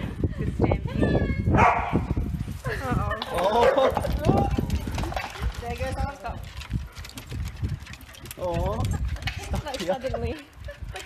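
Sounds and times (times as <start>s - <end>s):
paws pattering on tiled floor: 3.4s - 11.0s.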